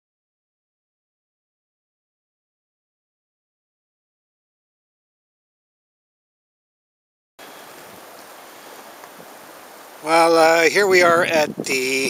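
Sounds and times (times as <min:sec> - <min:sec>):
faint outdoor background hiss: 0:07.4 - 0:12.0.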